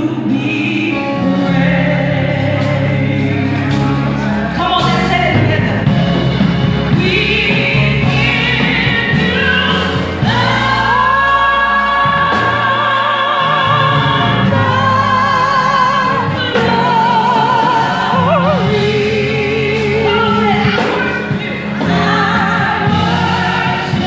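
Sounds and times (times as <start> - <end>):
instrumental accompaniment: 0.0 - 24.0
high voice singing with vibrato: 7.1 - 23.7.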